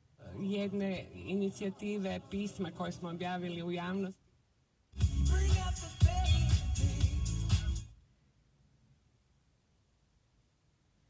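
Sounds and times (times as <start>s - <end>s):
music with heavy beat on car radio: 5.0s - 7.9s.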